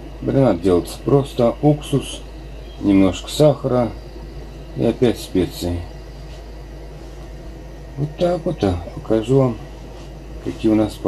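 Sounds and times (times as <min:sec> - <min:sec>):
low even hum: 0:00.0 - 0:11.0
pot boiling: 0:00.0 - 0:11.0.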